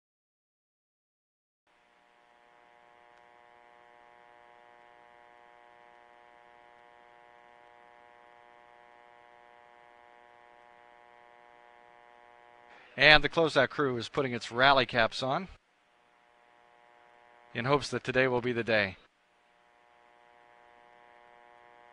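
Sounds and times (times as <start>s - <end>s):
faint hum of held tones: 1.7s - 21.9s.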